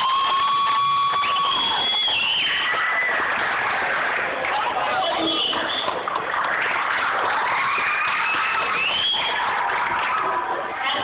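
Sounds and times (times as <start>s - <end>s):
crowd of voices in hall: 0.0s - 11.0s.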